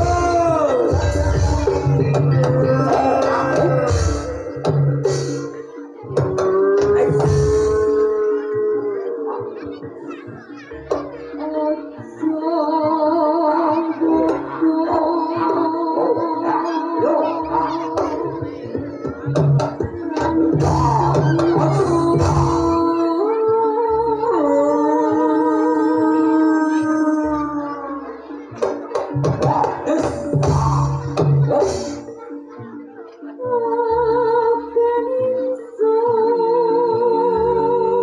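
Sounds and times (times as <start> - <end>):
person singing long note: 0.0 - 9.8
woman singing a long note: 5.8 - 10.0, 11.3 - 18.6, 20.0 - 28.4, 33.4 - 38.0.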